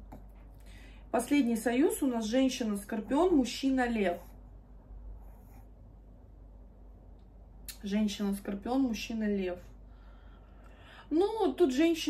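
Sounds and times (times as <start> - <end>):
woman speaking: 1.1 - 4.4, 7.7 - 9.7, 11.0 - 12.0.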